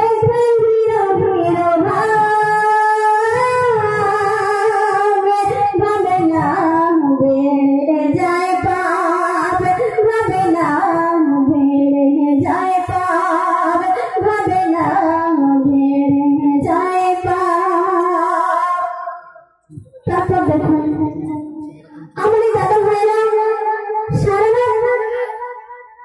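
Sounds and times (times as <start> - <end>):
woman singing into a microphone: 0.0 - 26.0.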